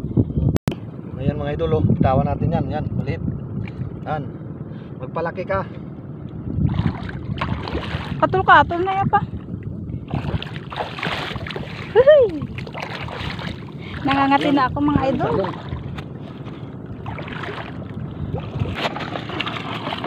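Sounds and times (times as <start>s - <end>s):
seawater splashing and sloshing: 6.6s - 9.0s, 10.0s - 20.0s.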